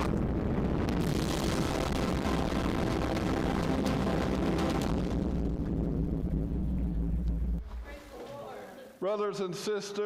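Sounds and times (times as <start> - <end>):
deep rumbling soundtrack drone: 0.0 - 8.0.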